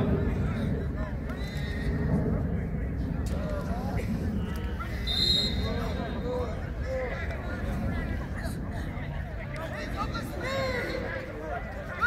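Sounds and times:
players calling and hollering: 4.5 - 12.0.

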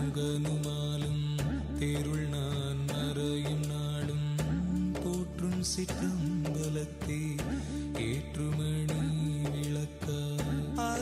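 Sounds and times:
mantra chanting with music: 0.0 - 11.0.

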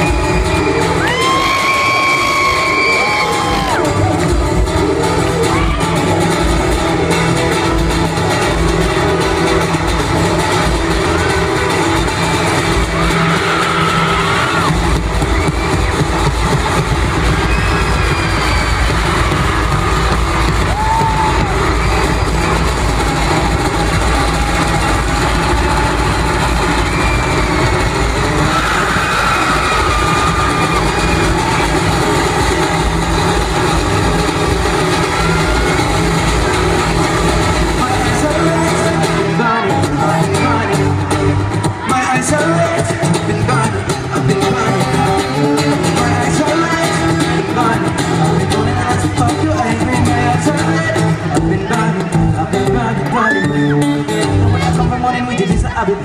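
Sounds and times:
crowd cheering: 0.0 - 56.0
live amplified concert music: 0.0 - 56.0.

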